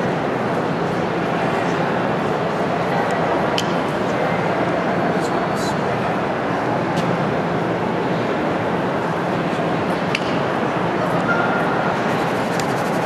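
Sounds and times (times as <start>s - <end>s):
babble of many voices: 0.0s - 13.0s.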